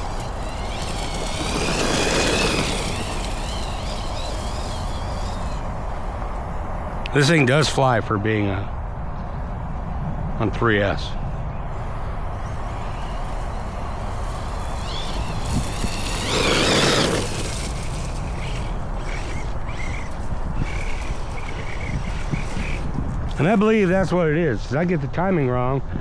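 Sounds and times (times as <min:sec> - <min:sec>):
electric motor whining: 0:00.0 - 0:06.4, 0:11.8 - 0:24.1
rc truck passing on grass: 0:00.0 - 0:25.6.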